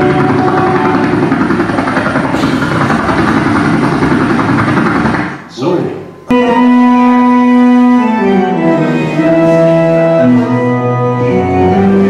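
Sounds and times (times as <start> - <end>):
audience clapping and cheering: 0.0 - 5.4.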